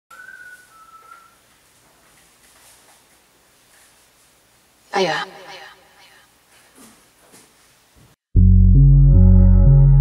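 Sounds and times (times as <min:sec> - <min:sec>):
faint room hiss: 0:00.1 - 0:08.2.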